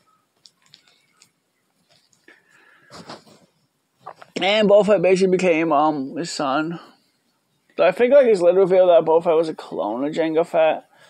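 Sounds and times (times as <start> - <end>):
person breathing wheezily: 2.2 - 3.4.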